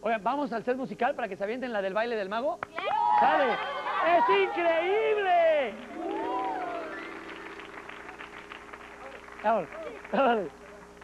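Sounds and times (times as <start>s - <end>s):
audience clapping and cheering: 2.7s - 11.0s
low steady hum: 5.4s - 11.0s.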